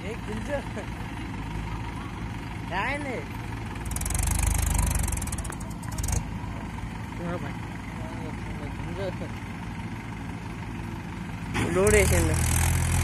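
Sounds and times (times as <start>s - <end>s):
tractor diesel engine running: 0.0s - 13.0s
faint voices: 0.9s - 3.8s.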